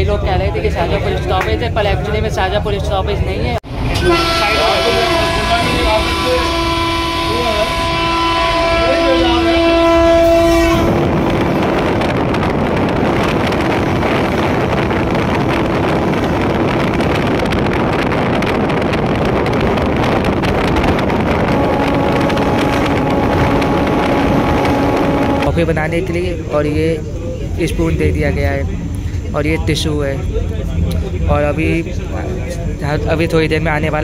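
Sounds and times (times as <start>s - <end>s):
train rushing on rails: 0.0s - 34.0s
train horn: 3.9s - 11.2s, 21.3s - 25.6s.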